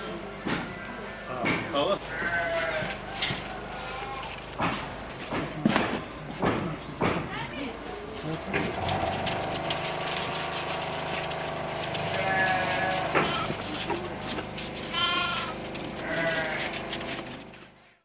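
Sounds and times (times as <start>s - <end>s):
sheep bleating: 2.0s - 3.0s, 12.0s - 13.6s, 14.8s - 17.0s.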